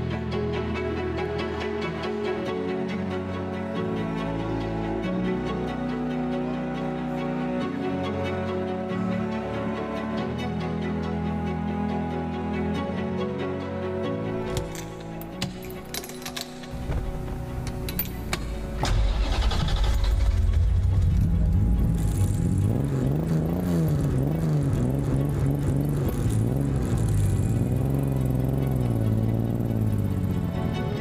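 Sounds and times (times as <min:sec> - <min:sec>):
background music: 0:00.0 - 0:31.0
car engine starting and revving: 0:16.7 - 0:31.0.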